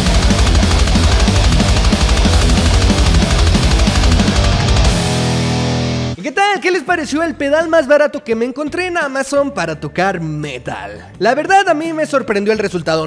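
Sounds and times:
distorted electric guitar riffing: 0:00.0 - 0:06.2
fast drums and bass: 0:00.0 - 0:06.2.

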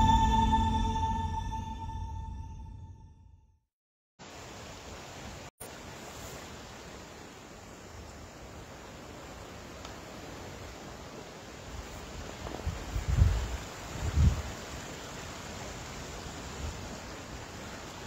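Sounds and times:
creek running: 0:04.2 - 0:18.0.

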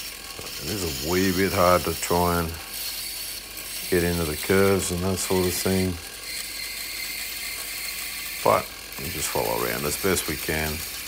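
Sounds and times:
bandsaw cutting steel: 0:00.0 - 0:11.0.

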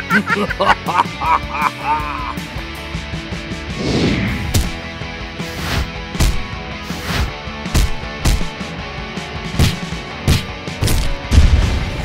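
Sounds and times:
cartoonish honking laughter: 0:00.0 - 0:02.4
background music: 0:00.0 - 0:12.0.

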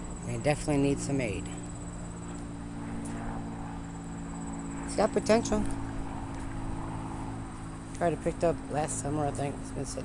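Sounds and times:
steady low hum: 0:00.0 - 0:10.0
crickets chirping: 0:00.9 - 0:05.1.

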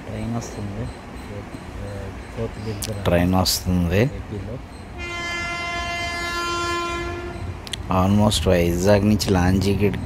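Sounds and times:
train horn blast: 0:05.0 - 0:07.6.

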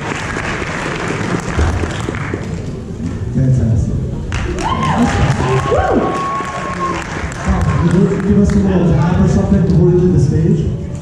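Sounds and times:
audience applauding and cheering: 0:00.0 - 0:02.8, 0:04.2 - 0:09.2.

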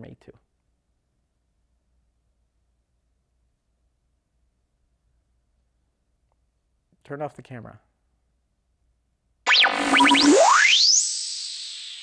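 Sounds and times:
synthesized pitch sweeps: 0:09.5 - 0:12.0.

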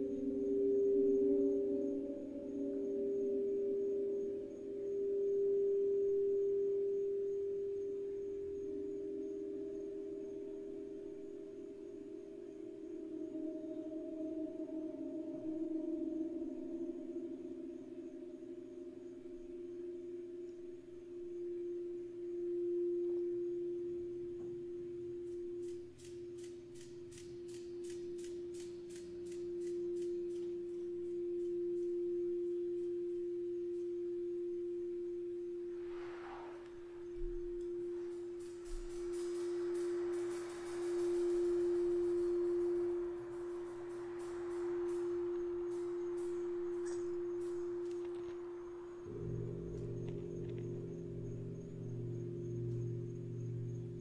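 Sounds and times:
crystal singing bowl tone: 0:00.0 - 0:54.0
faint high ticks: 0:25.2 - 0:34.8, 0:36.6 - 0:54.0
gong softly played: 0:36.7 - 0:54.0.

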